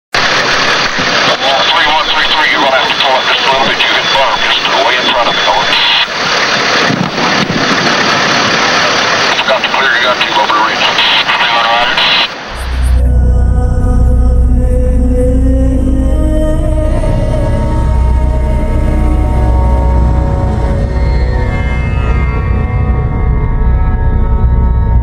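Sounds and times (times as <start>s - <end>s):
indistinct voices: 1.3s - 6.1s, 9.4s - 21.9s
loud vehicle noise: 6.1s - 9.4s, 12.3s - 25.0s.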